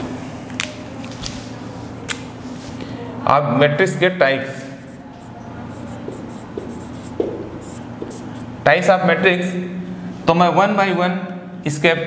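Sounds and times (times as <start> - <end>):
low steady hum: 0.0 - 12.0
marker pen writing on whiteboard: 4.6 - 8.6.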